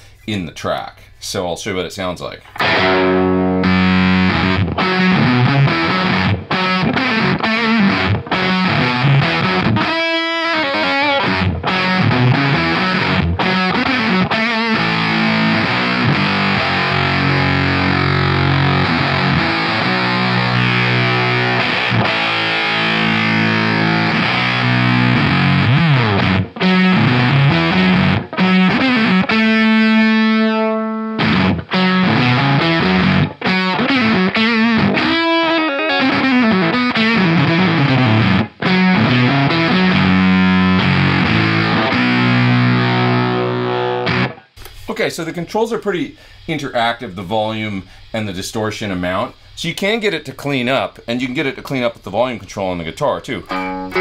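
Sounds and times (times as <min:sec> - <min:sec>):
distorted electric guitar riffs: 0:02.5 - 0:44.7, 0:53.4 - 0:54.0.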